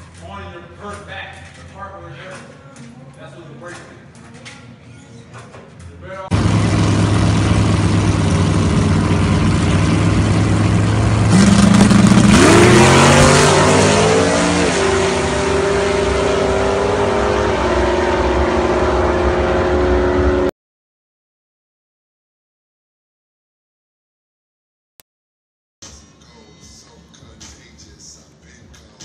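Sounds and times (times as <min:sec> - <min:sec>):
drag car engine revving: 0:06.3 - 0:20.5.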